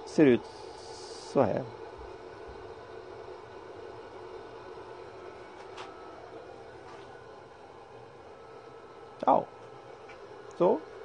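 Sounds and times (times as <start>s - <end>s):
pellet burner humming: 0.0s - 11.0s.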